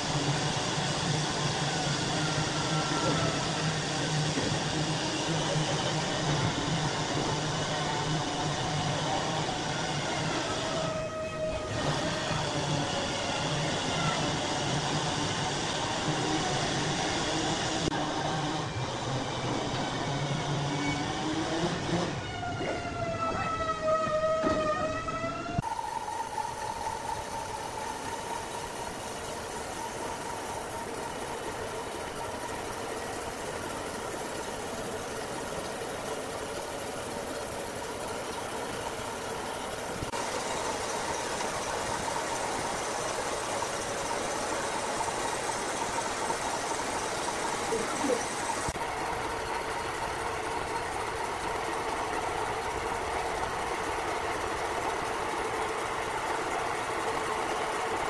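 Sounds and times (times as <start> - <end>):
band sawmill cutting log: 0.0 - 22.2, 25.6 - 58.0.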